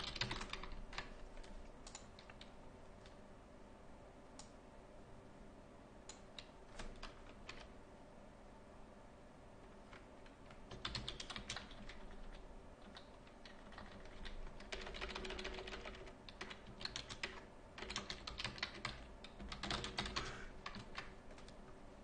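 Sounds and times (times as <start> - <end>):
typing on computer keyboard: 0.0 - 3.2, 6.1 - 7.7, 9.9 - 21.6.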